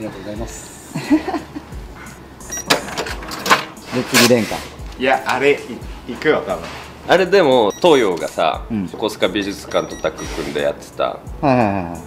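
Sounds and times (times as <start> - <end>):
payment terminal beep: 2.5 - 2.9, 7.7 - 8.4, 9.6 - 10.6.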